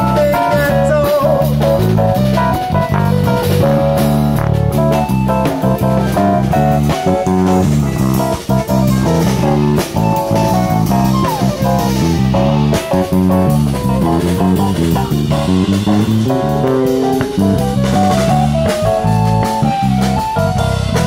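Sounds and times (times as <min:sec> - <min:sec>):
bass and drum kit: 0:00.0 - 0:21.0
electric guitar melody: 0:00.0 - 0:21.0.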